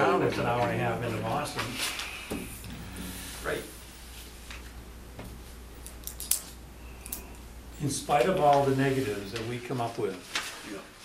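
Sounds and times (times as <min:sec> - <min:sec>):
low electrical hum: 0:00.0 - 0:11.0
papers crackling: 0:08.1 - 0:11.0.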